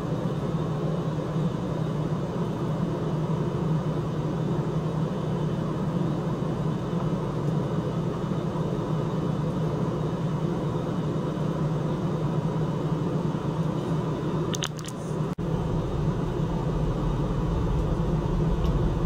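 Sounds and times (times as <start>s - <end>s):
low machine hum: 0.0s - 19.0s.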